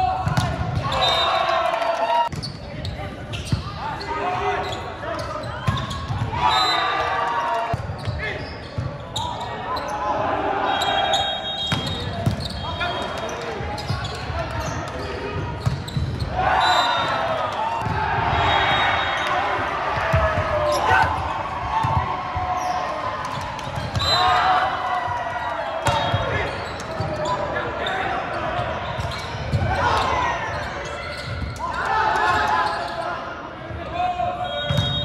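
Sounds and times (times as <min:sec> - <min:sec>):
players and spectators shouting: 0:00.0 - 0:02.3, 0:03.6 - 0:08.6, 0:09.2 - 0:15.6, 0:16.2 - 0:35.0.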